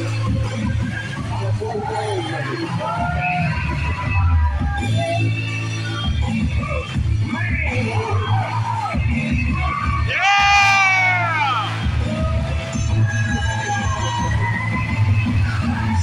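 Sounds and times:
music with steady bass line: 0:00.0 - 0:16.0
crowd yelling and cheering: 0:01.1 - 0:05.3, 0:06.6 - 0:16.0.

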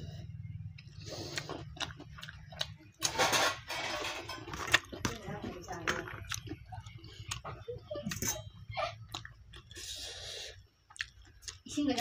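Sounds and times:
mouth chewing food: 0:00.6 - 0:03.1, 0:04.4 - 0:07.7, 0:09.0 - 0:12.0.

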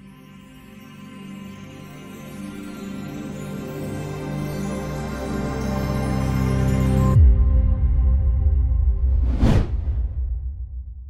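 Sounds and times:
rising and falling whoosh: 0:09.1 - 0:10.3.

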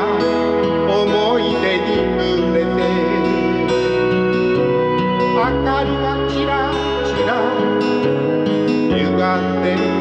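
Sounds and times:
karaoke backing music: 0:00.0 - 0:10.0.

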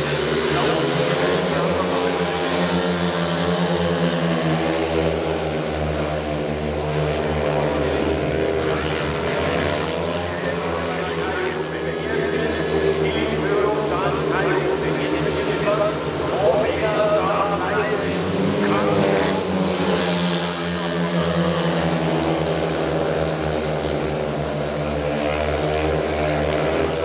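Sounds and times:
motorbike engines racing: 0:00.0 - 0:27.0.

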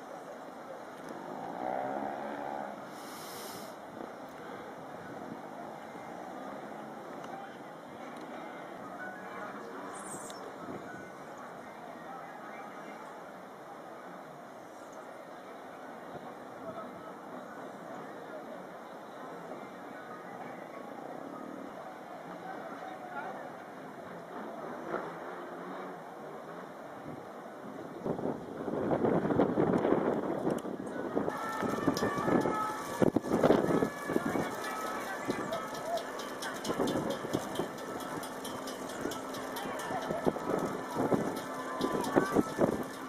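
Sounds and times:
outdoor ambience: 0:00.0 - 0:43.0
indistinct voices: 0:30.8 - 0:43.0.

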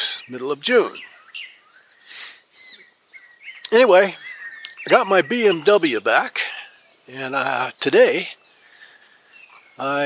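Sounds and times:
birds chirping and whistling: 0:00.0 - 0:10.0.

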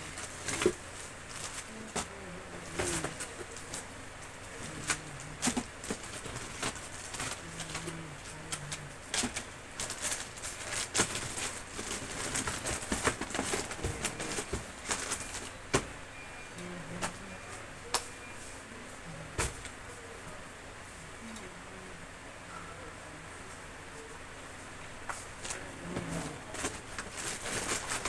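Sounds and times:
plastic packet rustling: 0:04.5 - 0:15.6, 0:25.6 - 0:28.0.

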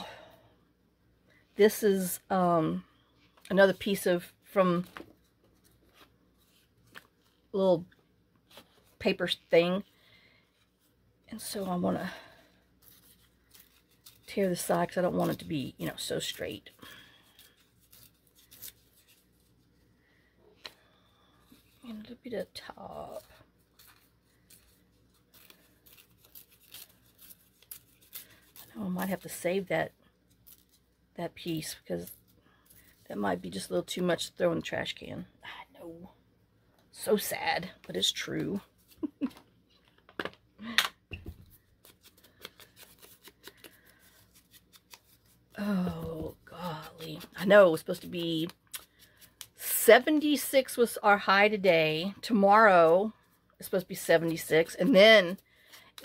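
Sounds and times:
paper rustling: 0:12.8 - 0:19.6, 0:23.2 - 0:29.4, 0:41.3 - 0:49.5.

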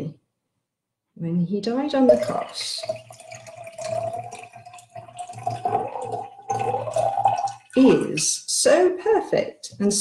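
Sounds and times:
liquid pouring into cup: 0:02.1 - 0:08.3.

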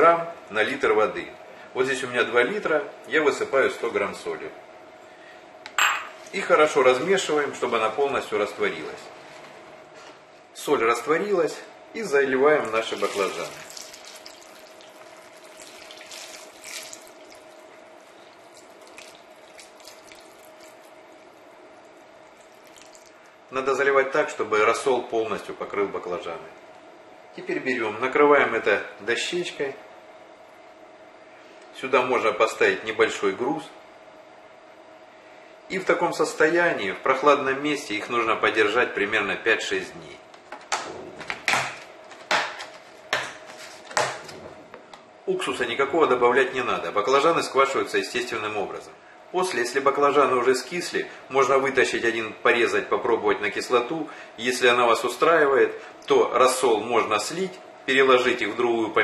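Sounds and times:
brine pouring into plastic tub: 0:12.6 - 0:17.6, 0:18.4 - 0:20.9.

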